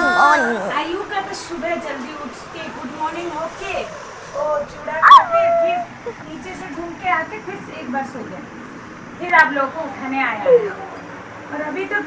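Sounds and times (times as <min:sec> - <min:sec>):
child squealing and whining: 0:00.0 - 0:00.8, 0:05.0 - 0:05.9.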